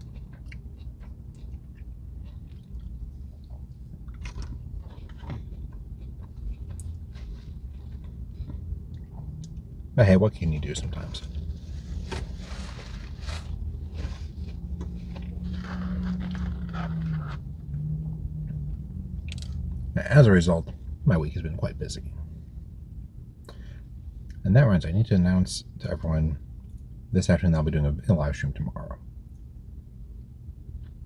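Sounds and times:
person crunching food: 0:00.0 - 0:09.7, 0:10.9 - 0:17.7, 0:19.2 - 0:19.6
low steady hum: 0:00.0 - 0:31.0.

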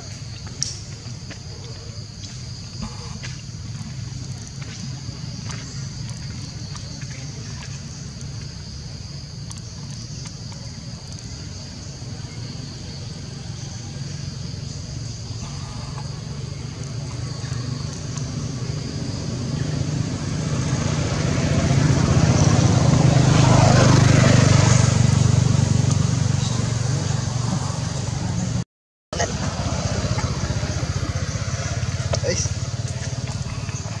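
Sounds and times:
vehicle engine passing by: 0:11.5 - 0:28.6, 0:29.2 - 0:34.0.

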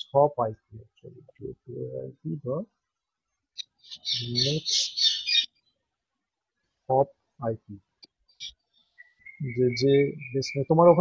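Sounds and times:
high-pitched bird chirping: 0:03.6 - 0:05.7, 0:08.3 - 0:11.0
man's voice: 0:04.3 - 0:04.7, 0:09.4 - 0:11.0.

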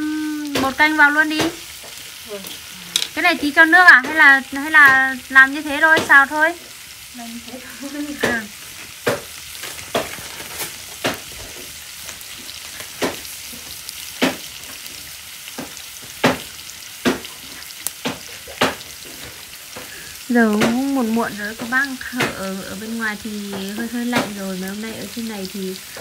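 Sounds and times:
vegetables sizzling in a wok: 0:00.0 - 0:26.0
sharp pops: 0:15.5 - 0:22.8, 0:23.4 - 0:25.1.

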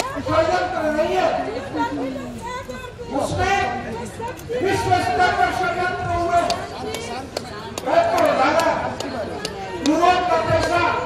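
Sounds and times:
other voices talking: 0:00.0 - 0:11.0.

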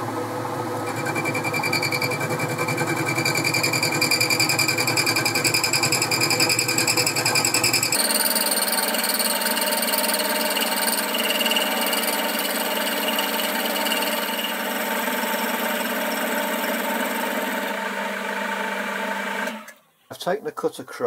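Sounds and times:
lathe milling with high whine: 0:00.7 - 0:19.6.

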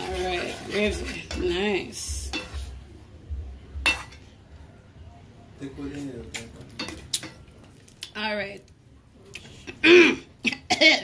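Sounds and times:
spoon stirring thick gravy: 0:00.0 - 0:02.9
spoon clinking against pot: 0:02.3 - 0:02.6, 0:03.8 - 0:04.3, 0:06.4 - 0:07.5.

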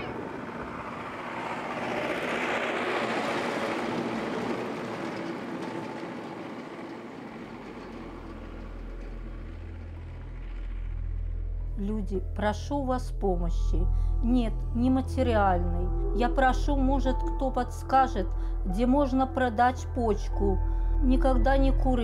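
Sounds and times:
truck driving past: 0:00.0 - 0:12.4
low steady hum: 0:04.4 - 0:22.0.

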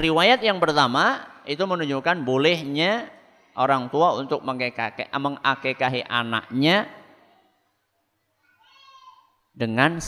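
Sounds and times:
echo of voice in hall: 0:00.0 - 0:08.2.

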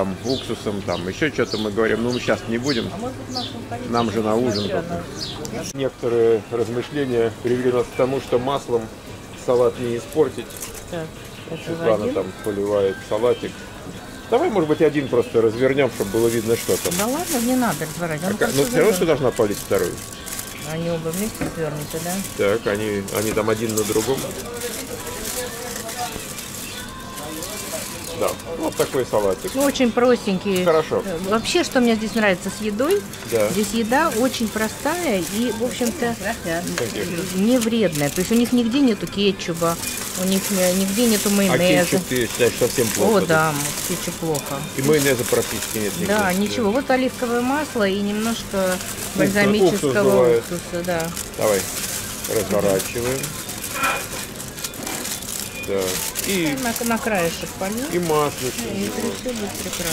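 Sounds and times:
plastic and foil crinkling: 0:06.6 - 0:59.9.

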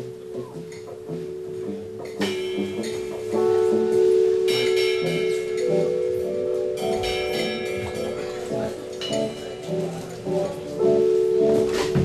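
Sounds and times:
bell-like chord tones: 0:00.0 - 0:12.0
jazz quartet playing: 0:00.0 - 0:12.0.

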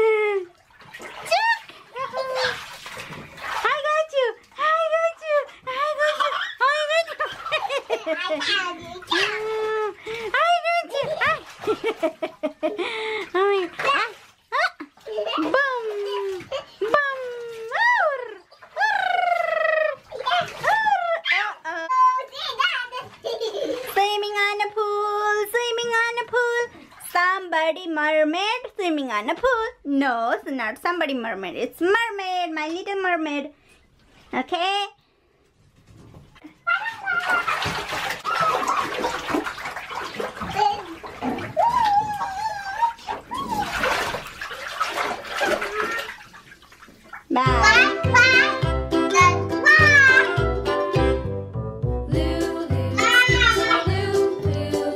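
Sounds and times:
bathwater splashing in a tub: 0:00.0 - 0:29.7, 0:35.7 - 0:50.7, 0:52.2 - 0:54.9
child's high wavering voice: 0:36.7 - 0:37.5, 0:41.6 - 0:43.7, 0:49.2 - 0:50.4, 0:53.0 - 0:53.9
child squealing: 0:41.6 - 0:43.7.

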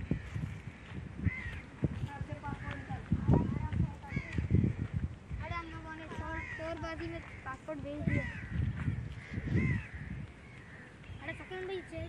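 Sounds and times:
crow cawing: 0:00.0 - 0:01.7, 0:02.4 - 0:12.0.

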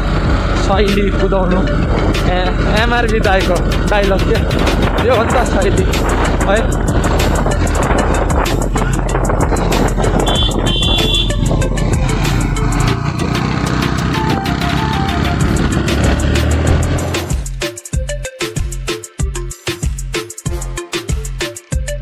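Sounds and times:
motorcycle engine running: 0:00.0 - 0:17.6
background music: 0:00.0 - 0:22.0
wind on microphone: 0:01.7 - 0:02.7, 0:04.3 - 0:14.4.

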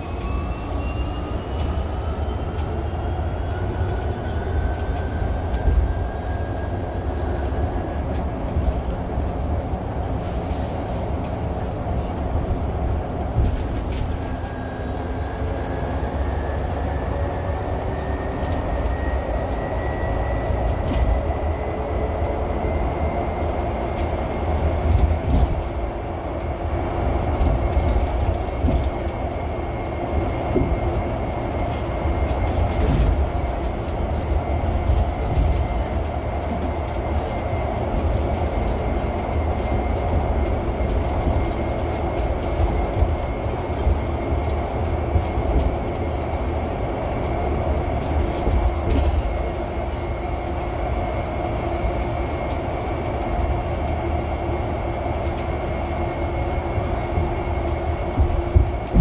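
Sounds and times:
bus tyres and chassis rumble: 0:00.0 - 0:59.0.

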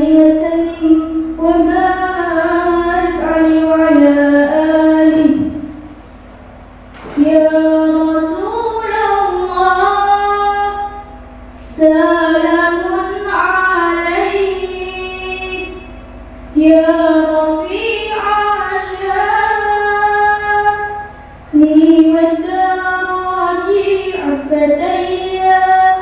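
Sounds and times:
girl singing devotional song: 0:00.0 - 0:05.9, 0:07.1 - 0:15.9, 0:16.5 - 0:26.0.

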